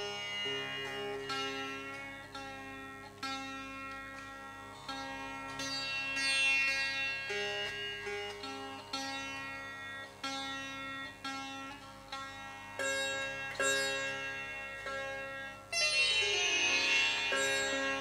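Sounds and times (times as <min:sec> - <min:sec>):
sitar plucked notes: 0:00.0 - 0:18.0
tanpura drone: 0:00.0 - 0:18.0.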